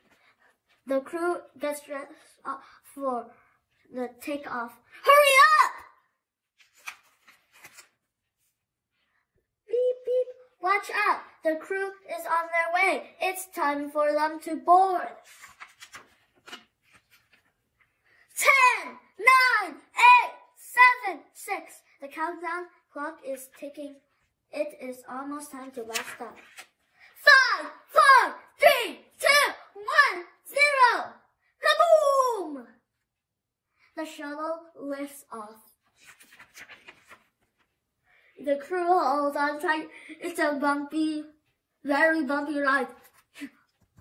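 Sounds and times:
paper page rustling: 0:06.4 - 0:08.7, 0:15.1 - 0:18.1, 0:25.5 - 0:26.9, 0:35.8 - 0:37.8.

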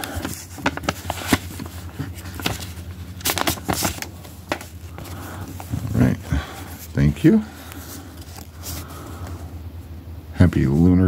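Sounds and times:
paper rustling and crinkling: 0:00.0 - 0:09.4
steady low hum: 0:00.0 - 0:11.0.

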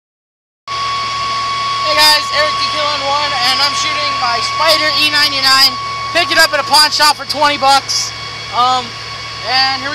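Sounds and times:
droning background hum: 0:00.7 - 0:09.9
high-pitched whine: 0:00.7 - 0:09.9.

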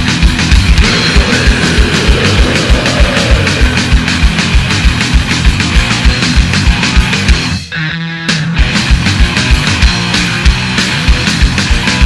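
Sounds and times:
metal band playing: 0:00.0 - 0:12.0.

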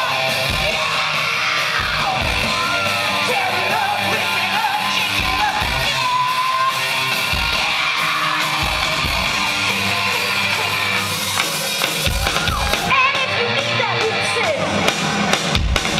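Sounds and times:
shouted vocals: 0:00.0 - 0:15.3
distorted guitar: 0:00.0 - 0:15.9.

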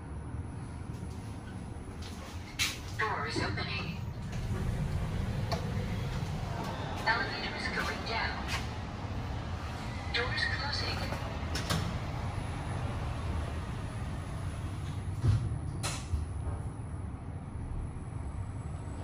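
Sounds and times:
low steady hum: 0:00.0 - 0:19.0
lift doors sliding shut: 0:02.6 - 0:10.2, 0:10.8 - 0:16.6.

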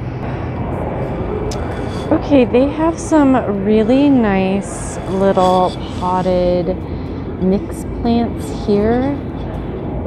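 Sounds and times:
store background rumble: 0:00.0 - 0:10.0.

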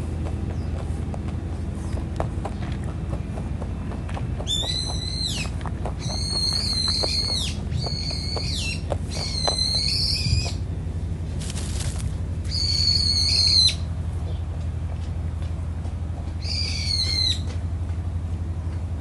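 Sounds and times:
steady low hum: 0:00.0 - 0:19.0
bird whistling call: 0:04.5 - 0:10.6, 0:12.5 - 0:13.9, 0:16.4 - 0:17.5.

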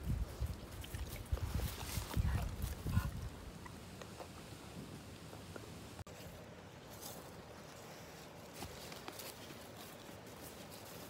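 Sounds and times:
dry grass crackling: 0:00.0 - 0:11.0.

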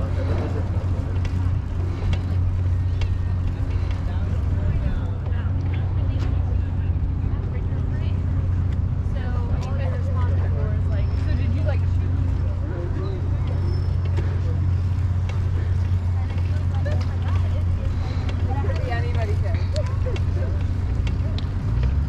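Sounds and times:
faint voices: 0:00.0 - 0:22.0
wind rumble on microphone: 0:00.0 - 0:22.0.

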